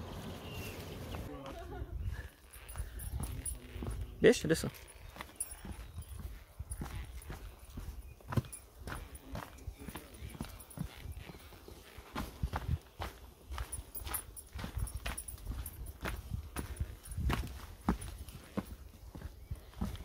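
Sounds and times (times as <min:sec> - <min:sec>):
footsteps on rocky trail: 0:00.0 - 0:20.0.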